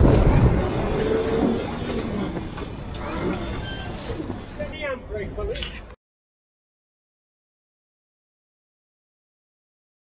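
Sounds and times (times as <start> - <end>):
low vehicle rumble: 0.0 - 4.8.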